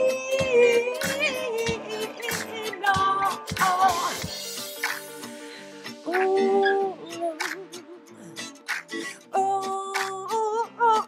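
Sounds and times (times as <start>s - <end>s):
instrumental backing track: 0.0s - 11.0s.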